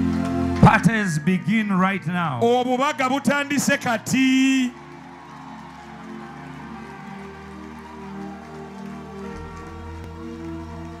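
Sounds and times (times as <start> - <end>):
church music held chords: 0.0 - 11.0.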